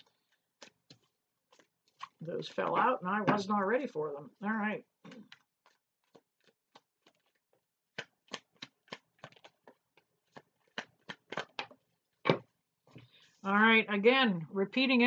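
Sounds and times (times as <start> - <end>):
cards being shuffled by hand: 5.2 - 13.2.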